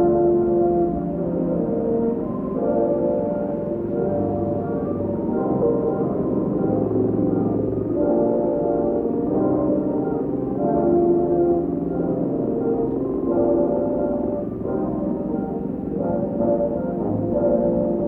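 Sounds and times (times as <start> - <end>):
muffled film music: 0.0 - 18.0.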